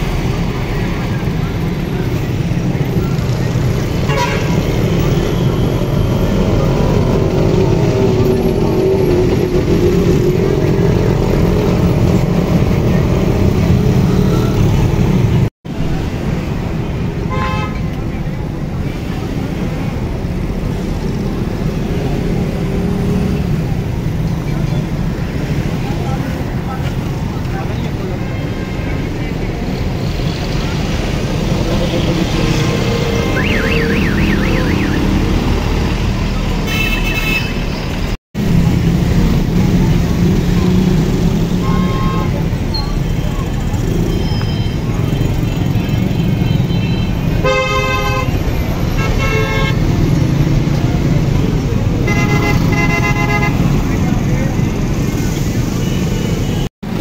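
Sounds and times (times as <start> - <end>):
road traffic rumble: 0.0 - 57.0
vehicle horns tooting: 4.0 - 5.0, 17.3 - 17.9, 33.1 - 35.2, 36.6 - 37.8, 41.5 - 42.5, 46.2 - 48.4, 49.0 - 49.9, 52.0 - 53.8.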